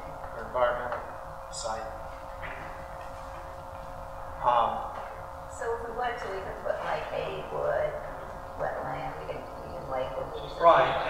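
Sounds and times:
faint steady hum: 0.0s - 11.0s
low room rumble: 0.0s - 11.0s.

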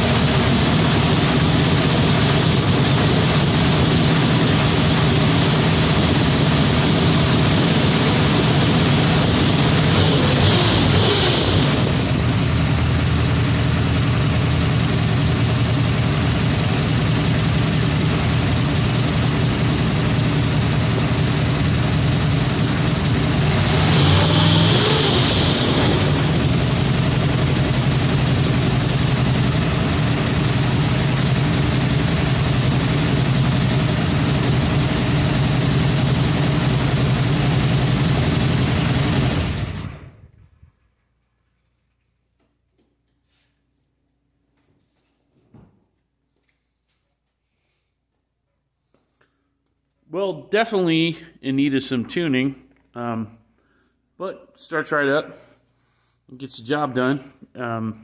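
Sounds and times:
car engine running and revving: 0.0s - 40.2s.

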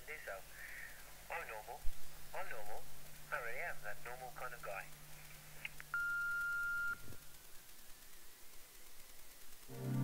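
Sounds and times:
electronic beep: 6.0s - 7.1s.

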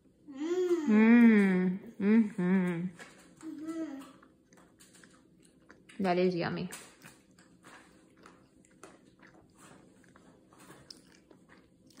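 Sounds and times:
cookie chewing crunches: 3.0s - 6.1s, 6.7s - 12.0s.

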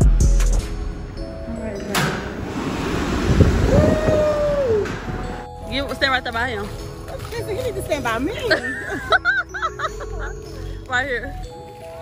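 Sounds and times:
wind buffeting microphone: 2.2s - 5.5s.

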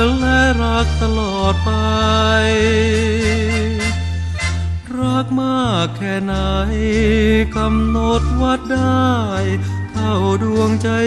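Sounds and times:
bass line: 0.0s - 11.0s
pop song with sliding melody: 0.0s - 11.0s.

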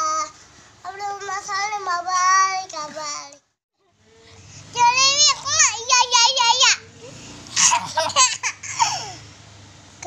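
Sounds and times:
boy laughing: 7.6s - 9.2s.

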